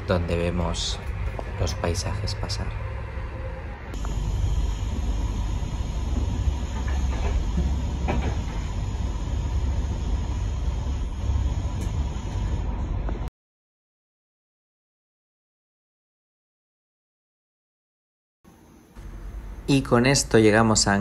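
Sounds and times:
train wheels rumbling: 0.6 - 13.2.

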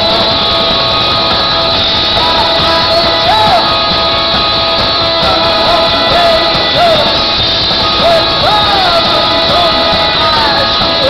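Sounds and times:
live rock band playing: 0.0 - 11.0
strummed electric guitar: 0.0 - 11.0.

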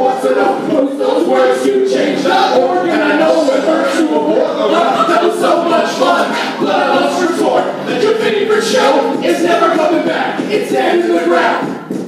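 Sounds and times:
voices singing a cappella: 0.0 - 11.9.

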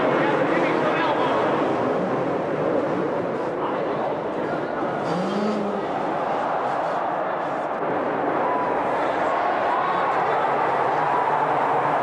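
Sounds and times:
steady noisy din: 0.0 - 12.0
dirt bike engines revving: 4.9 - 7.7.

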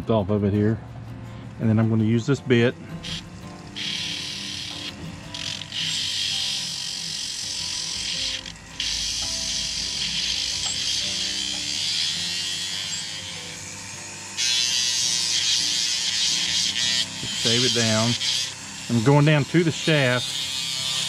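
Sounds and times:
rotary tool grinding wood: 2.9 - 21.0.

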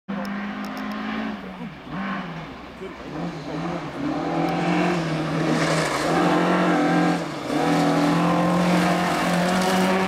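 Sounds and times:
rally car engine approaching: 0.1 - 10.0.

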